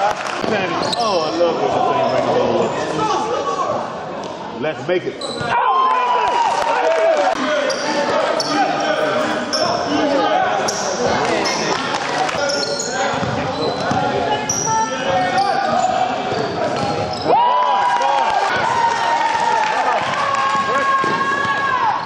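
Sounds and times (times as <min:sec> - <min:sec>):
sneakers squeaking: 0:00.4 - 0:01.4, 0:05.2 - 0:05.6, 0:07.6 - 0:17.3
players and spectators calling out: 0:05.1 - 0:22.0
ball bouncing on court floor: 0:13.1 - 0:14.1.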